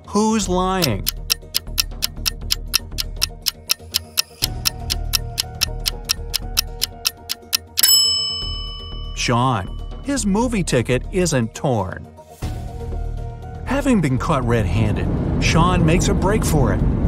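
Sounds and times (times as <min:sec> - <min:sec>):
background music: 0:00.0 - 0:15.4
fast clock-like ticking: 0:00.8 - 0:07.9
bright ringing chime: 0:07.5 - 0:10.1.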